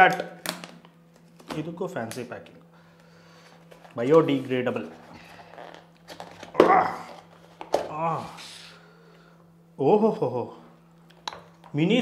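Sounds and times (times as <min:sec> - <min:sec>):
person exclaiming: 0:06.5 - 0:07.2.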